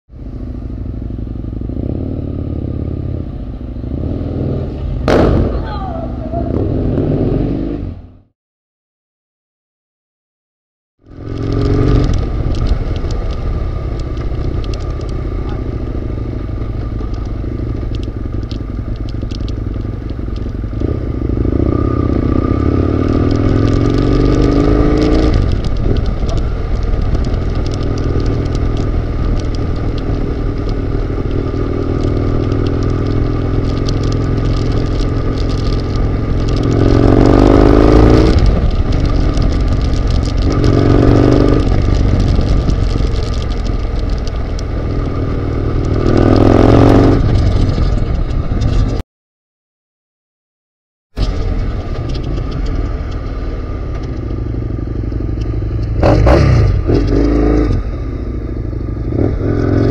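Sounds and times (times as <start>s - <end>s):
motorcycle engine accelerating: 0.1s - 8.3s, 11.0s - 49.0s, 51.2s - 59.9s.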